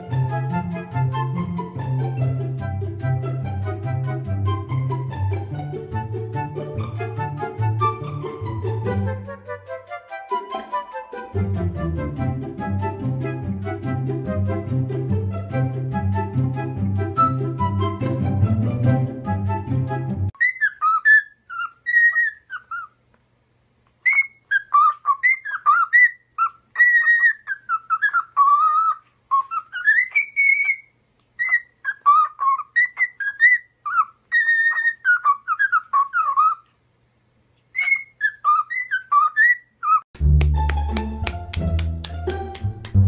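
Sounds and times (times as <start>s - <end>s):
cockatiel whistling: 20.4s - 23.0s, 24.0s - 36.6s, 37.7s - 40.0s.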